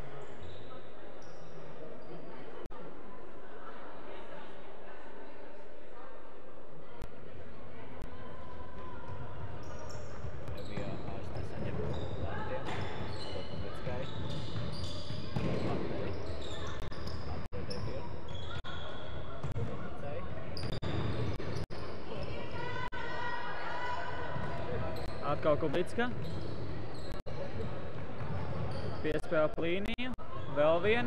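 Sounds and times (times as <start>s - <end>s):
sneakers squeaking on wooden floor: 9.6s - 19.7s, 20.5s - 22.8s, 24.4s - 29.4s.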